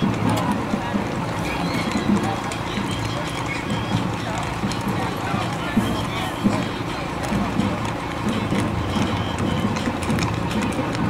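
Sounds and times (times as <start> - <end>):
horse hooves clip-clopping on pavement: 0.0 - 11.0
people talking: 0.0 - 11.0.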